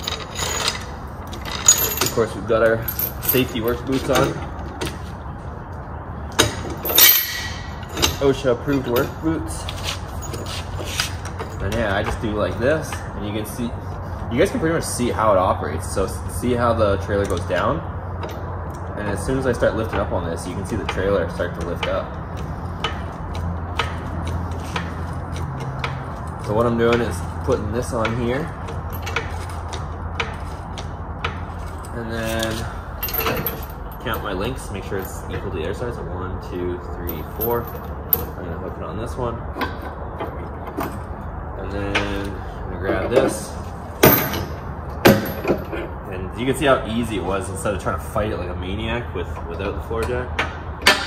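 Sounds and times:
metal chain clinking: 0:00.0 - 0:05.0, 0:06.4 - 0:13.0, 0:19.1 - 0:35.5, 0:37.0 - 0:38.6, 0:39.6 - 0:46.1
low steady rumble: 0:00.0 - 0:51.0.

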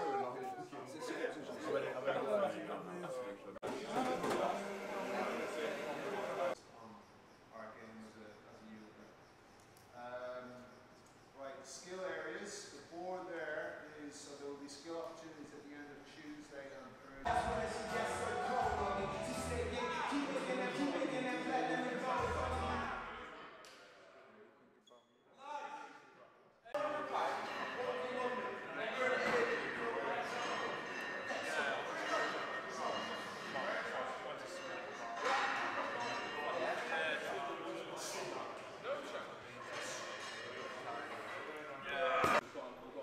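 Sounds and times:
people talking in a hall: 0:00.0 - 0:08.8, 0:11.4 - 0:43.0
music: 0:17.3 - 0:23.4.

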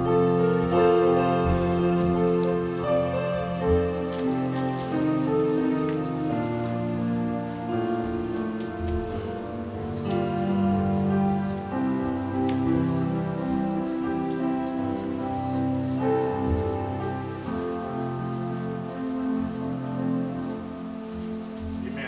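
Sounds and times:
soft electronic keyboard chords: 0:00.0 - 0:22.0.

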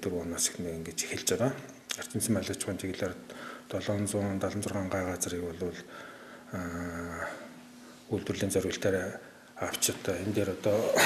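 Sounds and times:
man speaking: 0:00.0 - 0:05.9, 0:06.5 - 0:07.5, 0:08.1 - 0:11.0.

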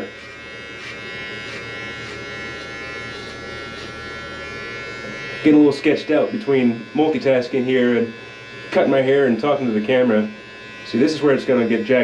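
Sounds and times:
electric hair clippers humming: 0:00.0 - 0:12.0.

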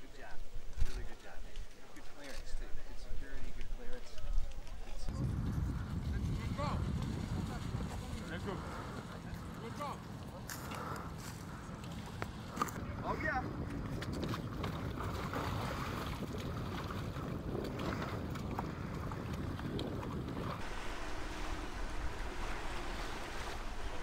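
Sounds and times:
voices: 0:00.0 - 0:13.8
wind: 0:00.0 - 0:24.0
boat engine running: 0:05.0 - 0:24.0
surf: 0:05.1 - 0:24.0
faint steady hum: 0:20.6 - 0:24.0.

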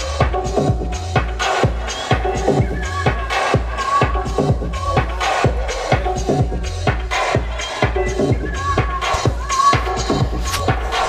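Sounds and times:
deep bass line: 0:00.0 - 0:11.0.

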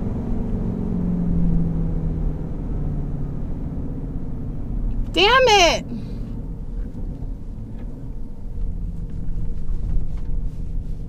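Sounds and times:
engine and road noise in car cabin: 0:00.0 - 0:11.0.

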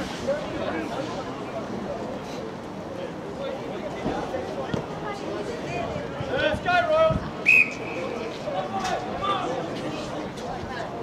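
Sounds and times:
referee's whistle blast: 0:07.4 - 0:08.0.

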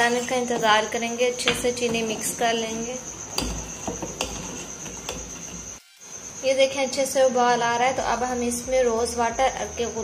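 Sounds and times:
metal ladle stirring in pot: 0:03.3 - 0:05.8.

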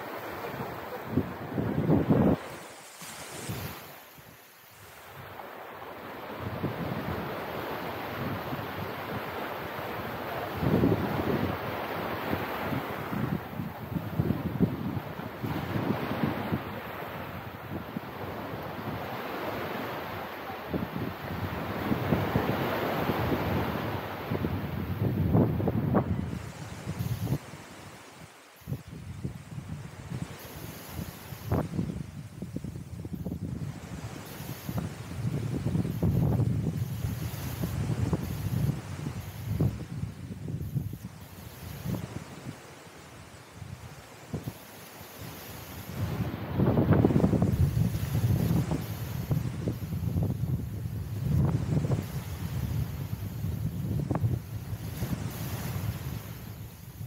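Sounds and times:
wind gusting over microphone: 0:00.0 - 0:28.0, 0:28.6 - 0:57.0
small waves washing on sand: 0:00.0 - 0:57.0.

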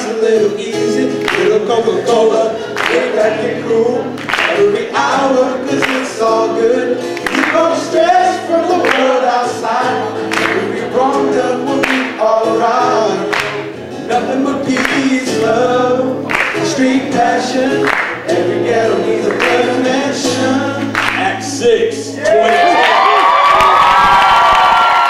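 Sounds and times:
acoustic guitar strumming: 0:00.0 - 0:22.5
men singing together: 0:00.0 - 0:22.6.

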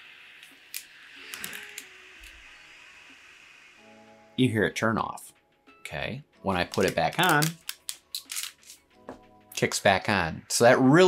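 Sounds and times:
light fan hiss: 0:00.0 - 0:04.3
handling clicks and rustle: 0:06.7 - 0:08.8.

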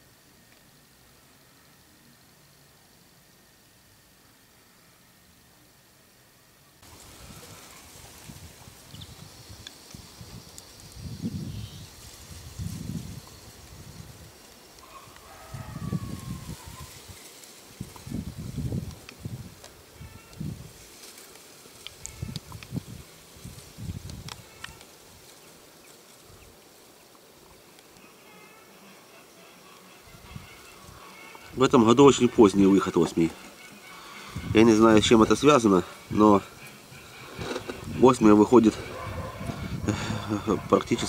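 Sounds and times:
faint steady hiss: 0:00.0 - 0:41.0
wind buffeting microphone: 0:06.9 - 0:14.4, 0:15.4 - 0:20.8, 0:22.0 - 0:24.6, 0:34.3 - 0:35.4, 0:36.0 - 0:41.0
faint chirps and clicks: 0:08.9 - 0:11.8, 0:21.8 - 0:22.8, 0:24.0 - 0:26.0.

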